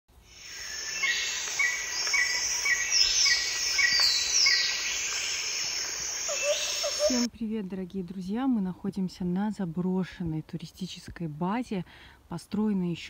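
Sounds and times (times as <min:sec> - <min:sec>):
high insect hiss: 0:00.2 - 0:07.3.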